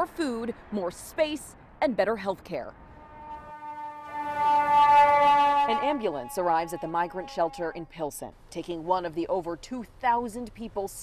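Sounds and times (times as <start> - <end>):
emergency vehicle air horn: 2.8 - 7.9.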